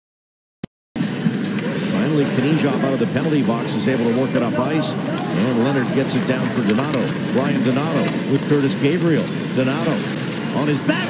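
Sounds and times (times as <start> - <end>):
faint rink sound: 1.0 - 11.0
sports commentator speaking: 1.8 - 11.0.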